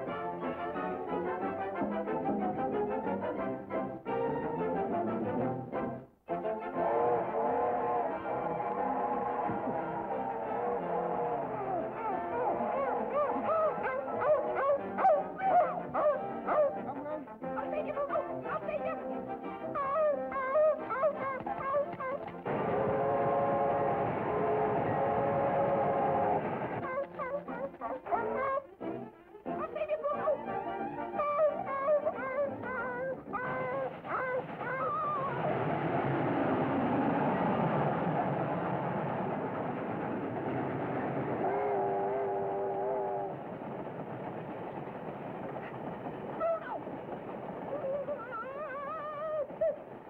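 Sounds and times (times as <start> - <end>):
train rushing past: 4.5 - 16.8, 20.6 - 27.4, 31.6 - 50.0
train whistle chord: 6.4 - 13.3, 22.4 - 26.7, 41.4 - 43.3
steam locomotive hissing: 22.4 - 26.8.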